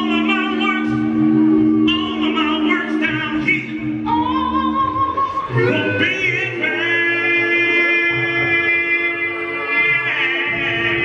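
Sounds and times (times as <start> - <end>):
male a cappella group singing: 0.0 - 11.0.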